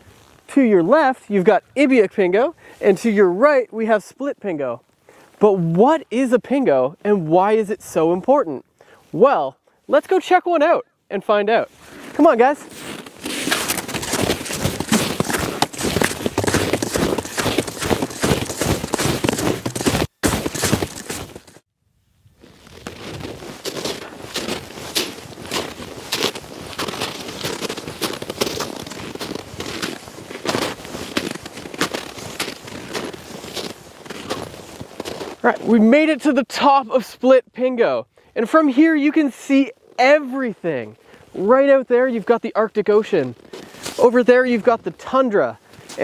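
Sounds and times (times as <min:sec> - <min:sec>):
footsteps crunching through snow: 0:11.5 - 0:21.7, 0:22.4 - 0:36.4, 0:38.7 - 0:46.0.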